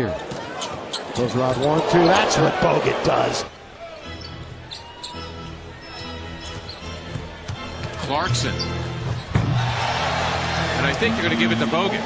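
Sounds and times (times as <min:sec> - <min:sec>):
arena music: 0:01.4 - 0:12.0.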